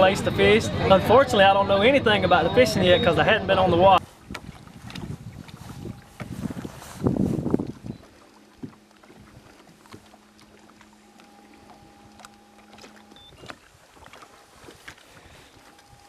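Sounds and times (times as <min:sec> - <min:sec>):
man talking: 0:00.0 - 0:04.0
electric trolling motor hum: 0:05.7 - 0:16.0.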